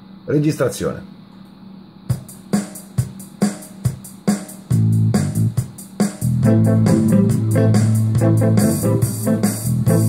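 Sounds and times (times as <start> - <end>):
drum machine beat: 2.1 - 10.0
sustained low bass part: 4.7 - 5.6, 6.2 - 10.0.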